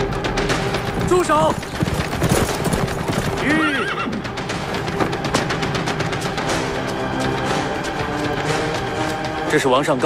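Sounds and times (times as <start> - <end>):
horse neighing: 3.1 - 4.3.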